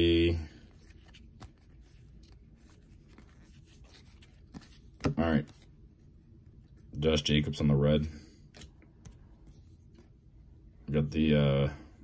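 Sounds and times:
trading cards being shuffled: 0:00.6 - 0:05.8.

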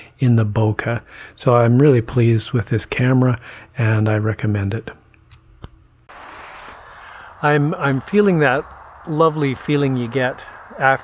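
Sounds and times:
soft forest ambience hiss: 0:00.0 - 0:05.2, 0:06.1 - 0:11.0.

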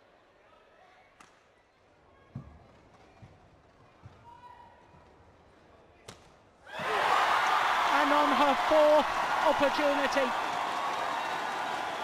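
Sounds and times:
crowd cheering: 0:06.7 - 0:12.0.

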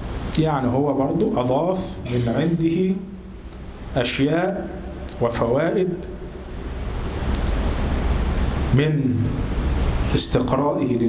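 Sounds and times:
rushing noise with low rumble: 0:00.0 - 0:10.3.

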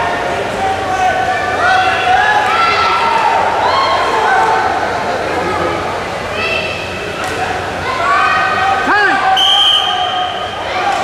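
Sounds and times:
people shouting in a hall: 0:00.0 - 0:05.1, 0:06.2 - 0:11.0
referee's whistle blast: 0:09.3 - 0:10.6.

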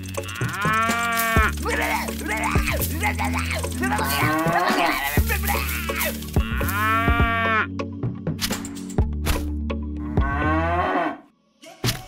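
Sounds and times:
cow mooing: 0:00.1 - 0:02.6, 0:03.9 - 0:05.0, 0:10.1 - 0:11.2.

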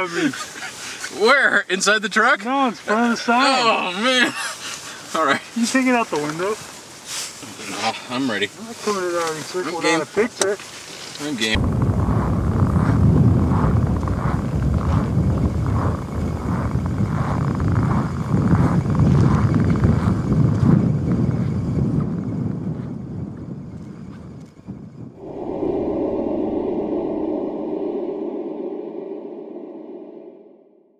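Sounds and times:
wind buffeting microphone: 0:11.6 - 0:30.9.

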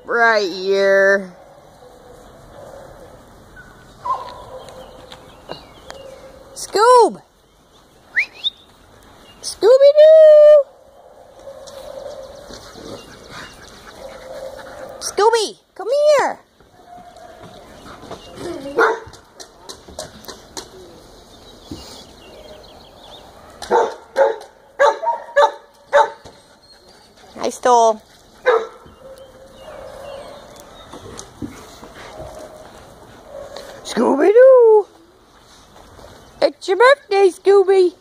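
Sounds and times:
quiet sounds from dogs: 0:00.2 - 0:09.5, 0:10.3 - 0:38.0
dog barking: 0:01.3 - 0:03.2, 0:04.0 - 0:04.9, 0:18.8 - 0:19.1, 0:23.4 - 0:26.2, 0:28.4 - 0:30.4
dogs moving about: 0:25.2 - 0:34.0.

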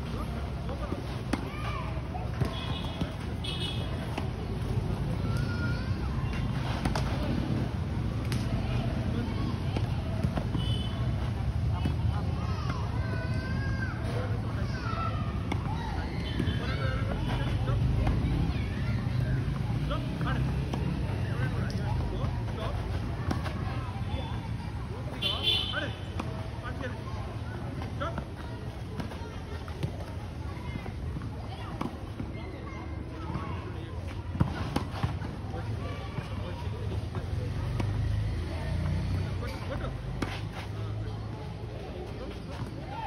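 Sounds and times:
distant voices: 0:00.0 - 0:43.0.

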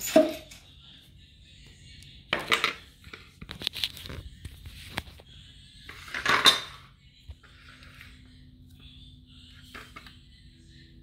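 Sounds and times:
metal objects clattering: 0:00.0 - 0:00.6, 0:06.1 - 0:06.8.

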